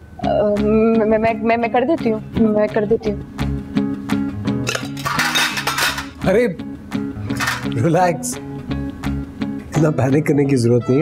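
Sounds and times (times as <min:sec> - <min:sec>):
guitar music: 0:00.2 - 0:11.0
metal instruments clinking: 0:04.6 - 0:06.2, 0:07.3 - 0:07.8.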